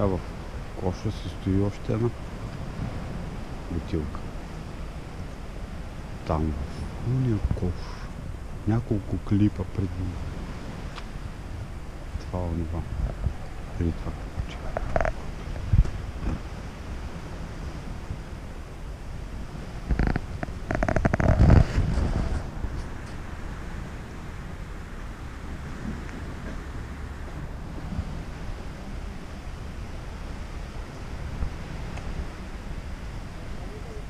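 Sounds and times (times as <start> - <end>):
wind rumbling on microphone: 0.0 - 34.0
rough crackling noise: 12.2 - 16.6, 19.5 - 23.5.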